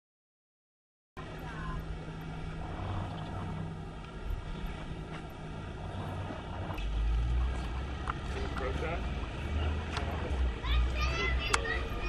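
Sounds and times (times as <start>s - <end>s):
low rumble: 1.2s - 10.6s
faint voices: 1.2s - 12.0s.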